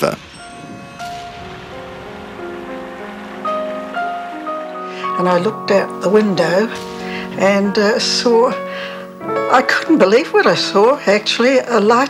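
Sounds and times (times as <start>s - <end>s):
faint steady rushing noise: 0.0s - 12.0s
slow held-note background music: 0.0s - 12.0s.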